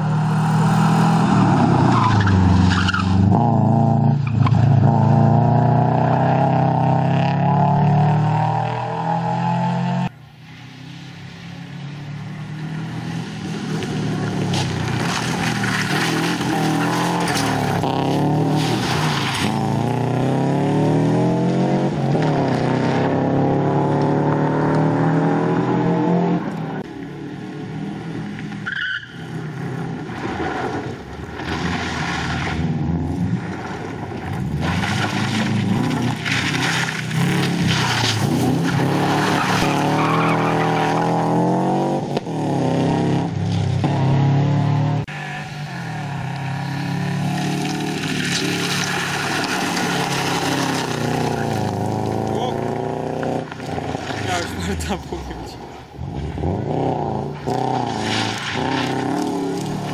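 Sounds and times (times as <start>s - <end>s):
rally car engine revving: 0.0s - 10.2s, 11.8s - 59.9s
tyres skidding on loose surface: 13.4s - 20.5s, 30.0s - 41.5s, 45.1s - 56.5s, 57.4s - 59.9s.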